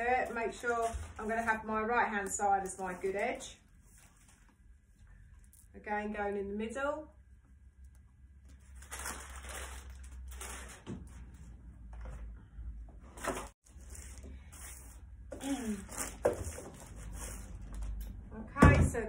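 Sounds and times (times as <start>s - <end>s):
packets and paper crinkling: 0.0s - 4.6s, 8.5s - 11.5s.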